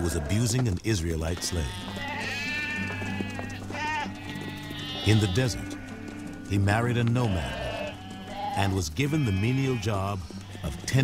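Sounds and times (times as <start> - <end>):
sheep bleating: 0.0 - 0.6, 1.2 - 11.0.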